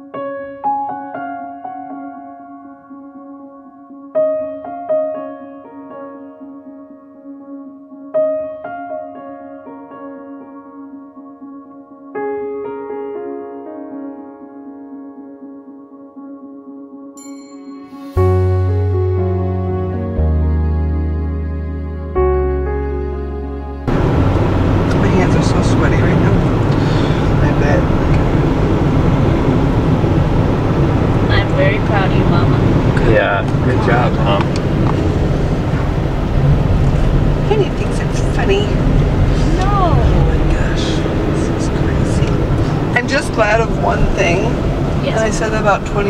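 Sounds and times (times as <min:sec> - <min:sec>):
car engine and tyres rumbling: 0:23.6 - 0:46.0.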